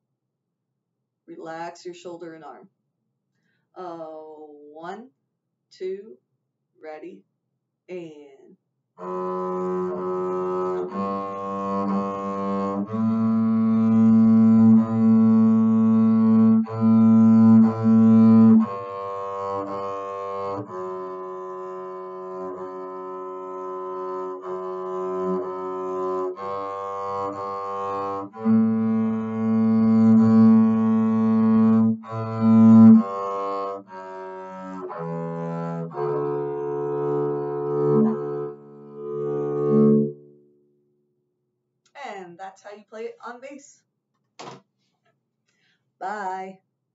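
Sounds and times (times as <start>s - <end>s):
bowed double bass notes: 9.0s - 40.6s.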